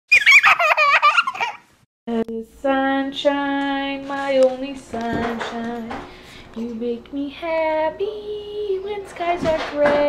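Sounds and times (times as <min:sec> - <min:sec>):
young child giggling: 0:00.1 - 0:01.7.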